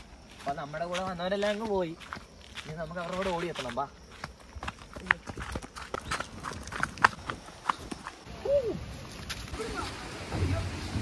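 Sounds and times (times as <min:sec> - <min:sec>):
footsteps on stony trail: 0:00.0 - 0:10.1.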